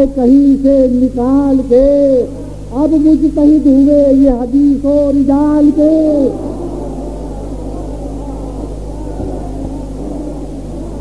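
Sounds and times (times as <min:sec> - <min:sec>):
mains hum: 0:00.0 - 0:11.0
murmur of many voices: 0:02.0 - 0:11.0
man chanting: 0:05.3 - 0:11.0.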